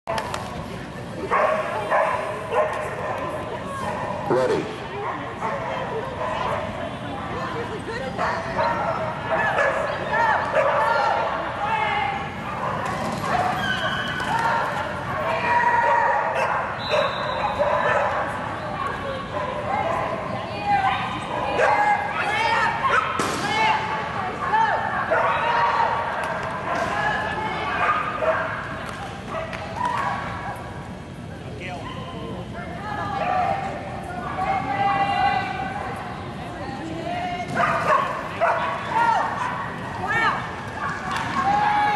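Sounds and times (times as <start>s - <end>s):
dogs barking and yipping: 12.4s - 18.5s.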